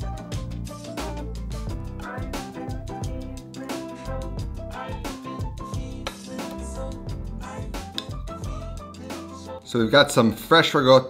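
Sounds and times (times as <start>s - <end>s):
instrumental music with drums and bass: 0.0s - 9.6s.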